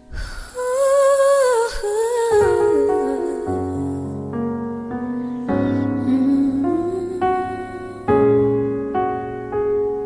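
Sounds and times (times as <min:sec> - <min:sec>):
woman singing wordless melody: 0:00.0 - 0:04.3, 0:05.6 - 0:08.4.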